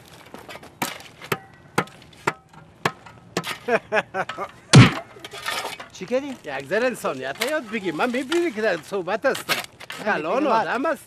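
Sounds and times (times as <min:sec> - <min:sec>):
rustling scrape: 0:00.0 - 0:02.3, 0:04.8 - 0:10.5
sharp knocks and cracks: 0:00.6 - 0:03.6, 0:04.3 - 0:05.1
loud heavy thud: 0:04.7 - 0:05.0
person's voice: 0:10.0 - 0:11.0.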